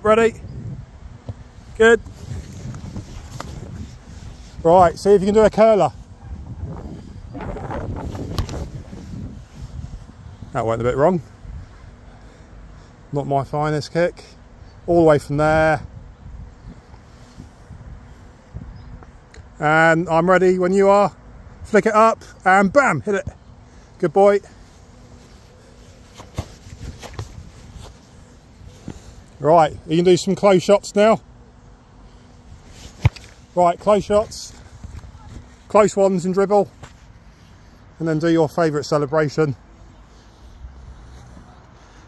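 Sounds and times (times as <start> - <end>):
wind buffeting microphone: 0.4 - 12.0, 15.5 - 19.2
feet thumping on grass: 25.2 - 28.1
football being kicked: 32.9 - 33.4.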